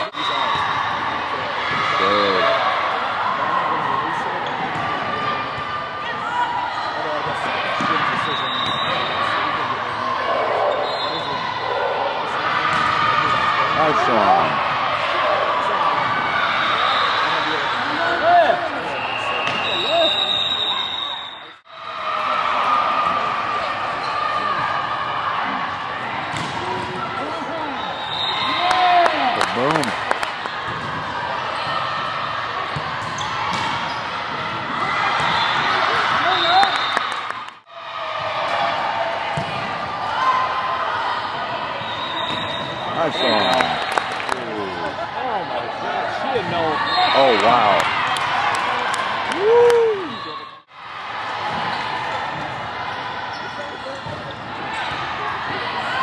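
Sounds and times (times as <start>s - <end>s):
referee whistle blasts: 8.2s - 9.2s, 18.8s - 21.6s, 41.8s - 43.9s
sneakers squeaking on court: 32.8s - 34.5s.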